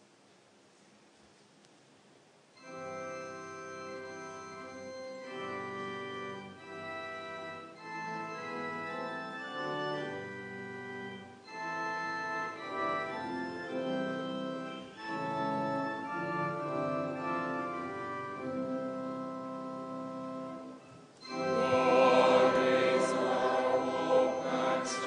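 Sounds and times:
church organ playing slow chords: 2.6s - 25.0s.

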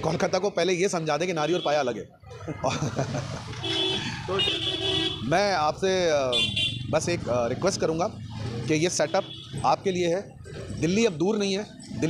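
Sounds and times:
busy street traffic: 0.0s - 12.0s
vehicle horn honking: 3.6s - 5.3s, 6.3s - 6.9s.

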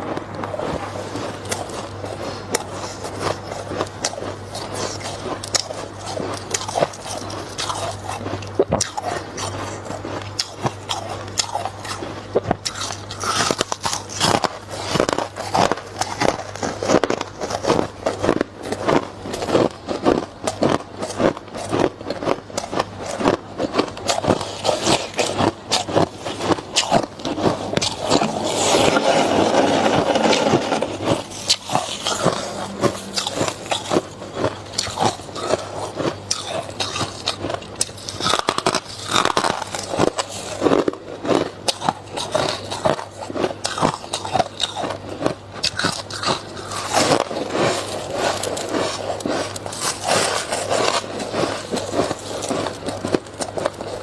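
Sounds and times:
crunching frost in mouth: 0.0s - 54.0s
frost being scraped: 24.4s - 35.9s.

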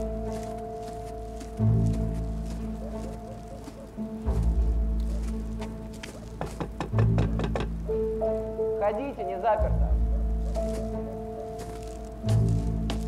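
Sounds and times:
sharp knocks on a door: 6.5s - 7.8s.

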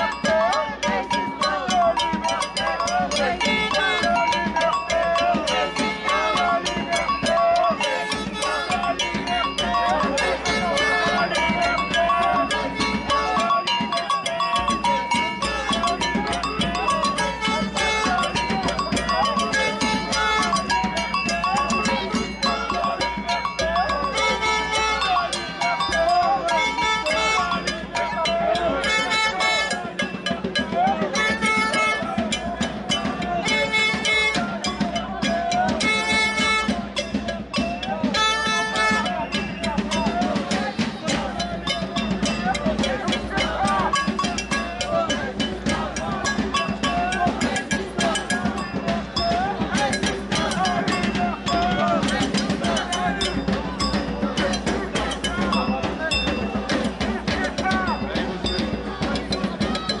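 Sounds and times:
crowd voices: 0.0s - 60.0s
drums beating steady rhythm: 0.0s - 60.0s.

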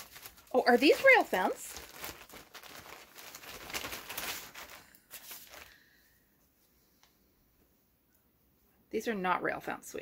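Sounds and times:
fabric rustling and crinkling: 0.0s - 6.7s.

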